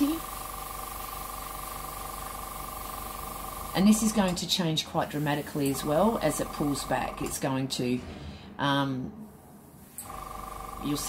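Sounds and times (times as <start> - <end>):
airbrush compressor humming: 0.0 - 7.6, 9.7 - 11.0.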